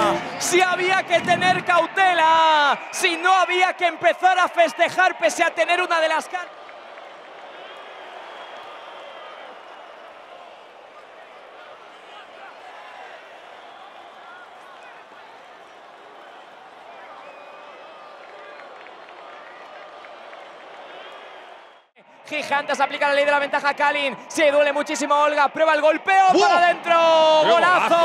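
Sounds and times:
murmur of spectators: 0.0s - 28.0s.

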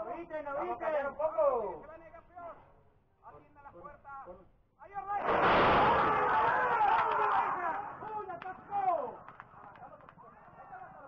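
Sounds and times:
starting gate crashing open: 5.3s - 6.5s.

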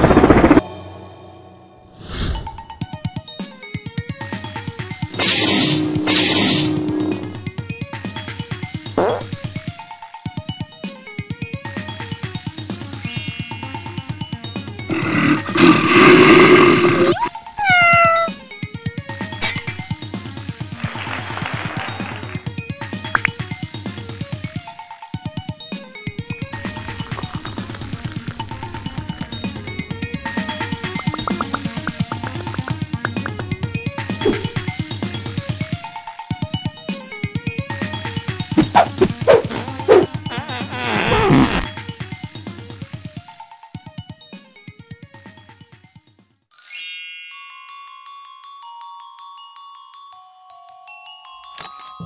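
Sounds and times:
dog whining: 14.9s - 18.4s, 38.6s - 41.6s
cat yowling and meowing: 15.9s - 18.4s
dog yipping: 17.1s - 18.4s, 38.6s - 40.4s.

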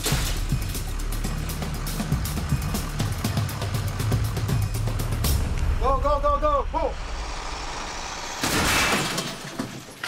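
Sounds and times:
vehicle engine idling: 0.0s - 8.4s
man shouting: 5.8s - 7.0s.

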